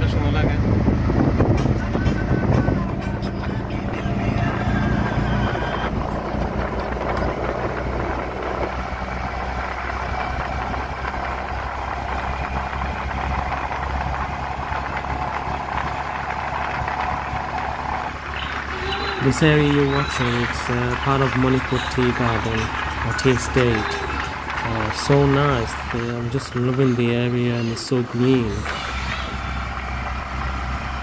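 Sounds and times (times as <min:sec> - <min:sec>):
road noise hiss: 0:00.0 - 0:31.0
vehicle engine drone: 0:00.0 - 0:31.0.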